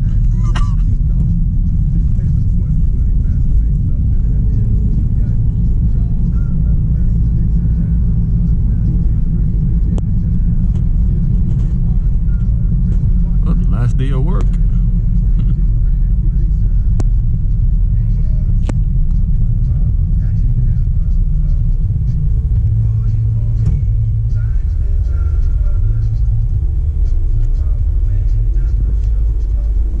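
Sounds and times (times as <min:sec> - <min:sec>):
car interior road noise: 0:00.0 - 0:30.0.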